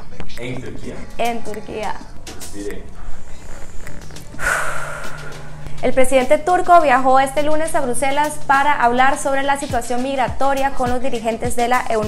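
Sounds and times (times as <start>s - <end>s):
background music: 0.0s - 12.0s
whoosh sound effect: 4.2s - 5.6s.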